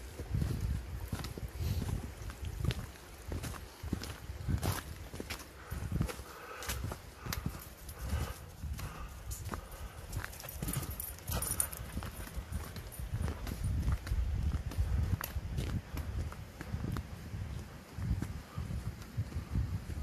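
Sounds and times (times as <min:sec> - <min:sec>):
footsteps on gravel: 0:00.0 - 0:19.9.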